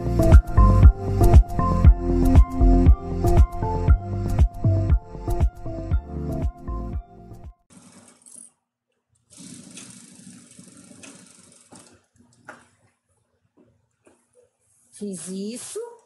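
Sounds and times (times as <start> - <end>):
background music: 0.0 - 7.6
sewing machine stitching: 9.3 - 12.2.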